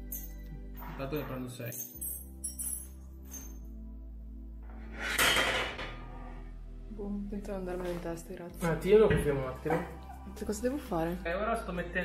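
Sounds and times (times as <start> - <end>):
metal bolts clattering on tile: 0.0 - 3.6, 5.1 - 6.0
quiet background music: 0.0 - 12.0.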